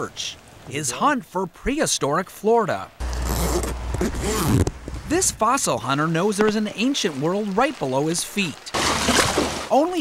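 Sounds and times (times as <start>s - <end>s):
jacket zipper rasping: 3.0s - 4.8s.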